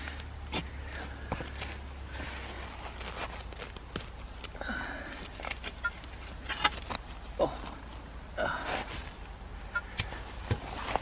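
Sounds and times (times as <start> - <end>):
spade crunching and scraping soil: 5.3 - 7.1.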